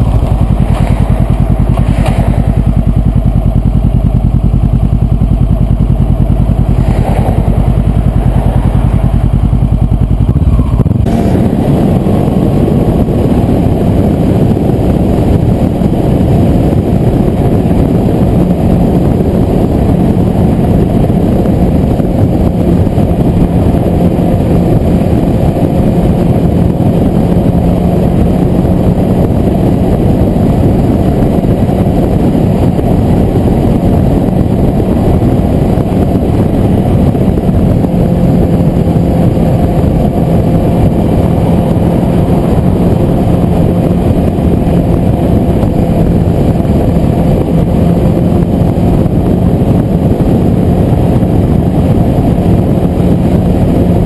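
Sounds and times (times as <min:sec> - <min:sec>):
motorcycle engine cruising: 0:00.0 - 0:54.0
wind and road rush: 0:00.0 - 0:54.0.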